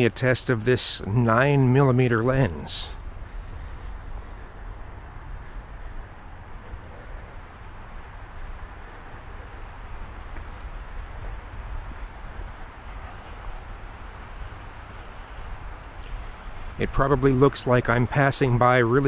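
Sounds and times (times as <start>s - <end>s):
low rumble with hiss: 0.0s - 19.0s.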